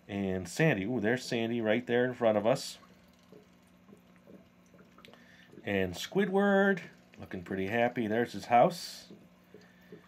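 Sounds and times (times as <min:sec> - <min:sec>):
faint steady hum: 0:00.0 - 0:10.0
soft bubbling blips: 0:01.0 - 0:07.5.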